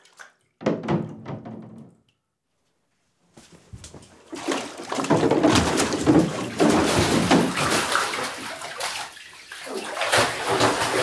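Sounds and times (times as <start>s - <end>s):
water splashing in a bathtub: 0.0s - 2.3s, 3.4s - 11.0s.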